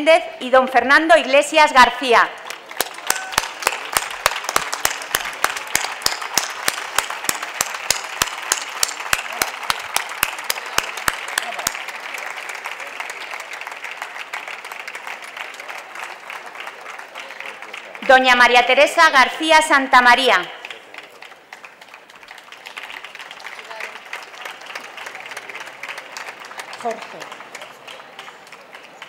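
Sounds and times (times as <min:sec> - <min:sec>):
sharp close-by claps: 0:02.4 - 0:18.1
audience applauding: 0:02.4 - 0:18.9, 0:20.3 - 0:29.0.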